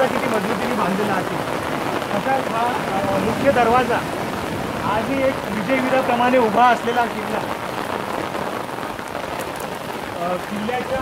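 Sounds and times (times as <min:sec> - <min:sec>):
heavy rain on stone: 0:00.0 - 0:11.0.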